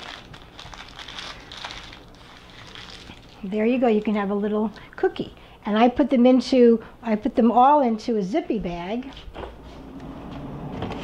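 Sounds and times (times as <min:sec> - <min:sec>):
rustling and handling noise: 0:00.0 - 0:04.4.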